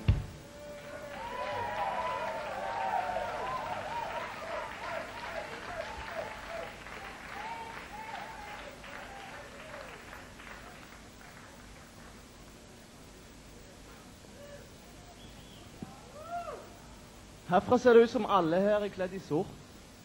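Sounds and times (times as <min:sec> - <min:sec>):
audience cheering and shouting: 0:00.5 - 0:09.5
audience applauding: 0:00.6 - 0:12.3.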